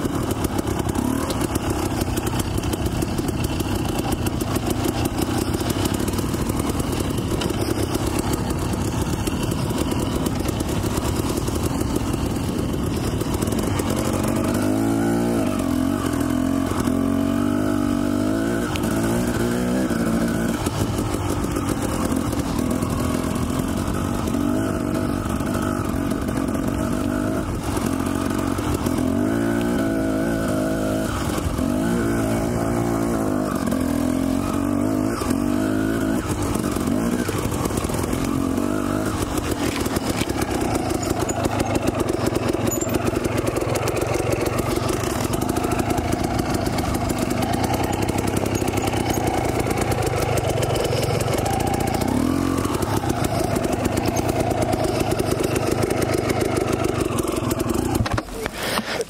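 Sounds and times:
dirt bike engine revving: 0:00.0 - 0:59.0.

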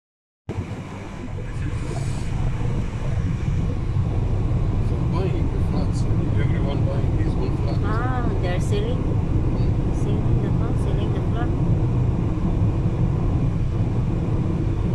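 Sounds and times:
car road and engine rumble: 0:00.5 - 0:14.9.

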